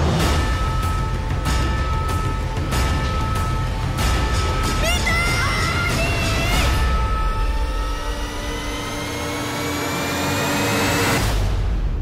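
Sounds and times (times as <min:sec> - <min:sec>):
rising jet whine: 0:06.7 - 0:11.3.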